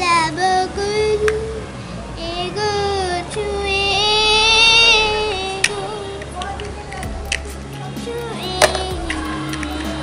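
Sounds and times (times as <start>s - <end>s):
child singing: 0.0s - 1.6s, 2.2s - 7.2s, 7.8s - 10.0s.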